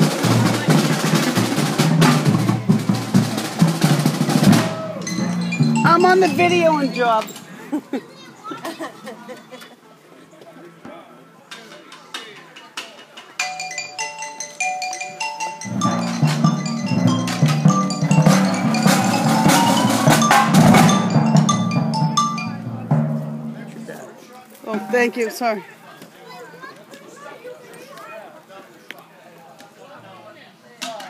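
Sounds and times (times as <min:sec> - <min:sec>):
deep timpani: 0:00.0 - 0:07.0, 0:15.6 - 0:24.0
drums: 0:00.0 - 0:08.2, 0:11.5 - 0:25.0
bells: 0:04.5 - 0:07.6, 0:13.4 - 0:23.9
marimbas and xylophones: 0:04.5 - 0:07.6, 0:13.4 - 0:23.9.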